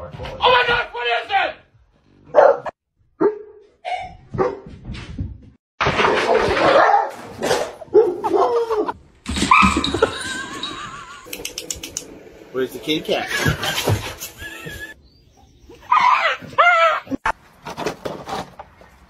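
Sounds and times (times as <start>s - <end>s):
dogs barking and yelping: 2.3s - 4.6s, 6.1s - 11.9s, 15.7s - 17.2s.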